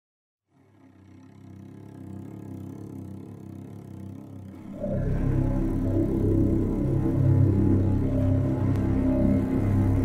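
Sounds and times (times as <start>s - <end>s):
low rumbling drone: 0.9s - 10.0s.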